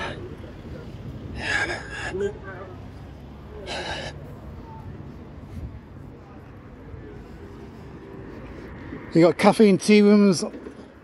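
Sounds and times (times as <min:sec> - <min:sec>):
distant traffic rumble: 0:00.0 - 0:11.0
passers-by: 0:00.0 - 0:11.0.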